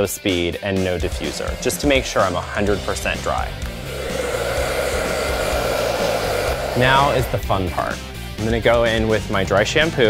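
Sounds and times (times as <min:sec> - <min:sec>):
hair dryer blowing: 0:00.8 - 0:08.3.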